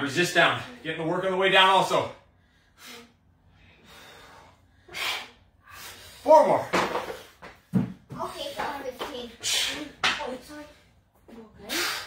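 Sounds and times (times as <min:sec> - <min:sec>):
person breathing hard: 0:02.3 - 0:06.3.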